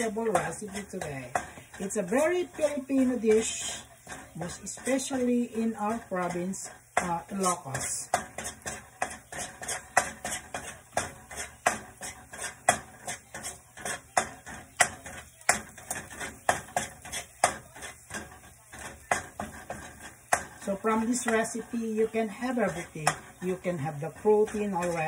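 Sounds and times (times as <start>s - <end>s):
garlic sauteing in oil: 0.0s - 25.0s
metal spoon scraping a wok: 0.0s - 25.0s.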